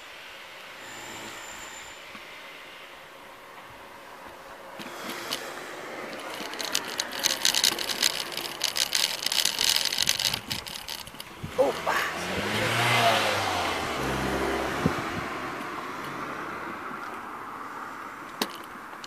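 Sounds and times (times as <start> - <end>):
dense rapid rattle of clicks: 4.8 - 12.1
car driving past: 11.6 - 18.3.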